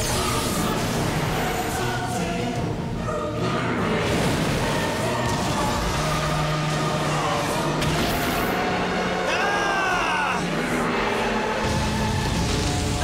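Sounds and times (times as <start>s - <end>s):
dramatic background music: 0.0s - 13.0s.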